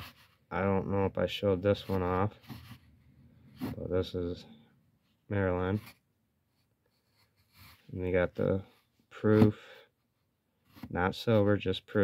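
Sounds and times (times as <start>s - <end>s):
man speaking: 0.5s - 2.4s, 3.6s - 4.6s, 5.3s - 5.9s, 7.9s - 9.6s, 10.9s - 12.0s
faint breath: 9.5s - 10.0s.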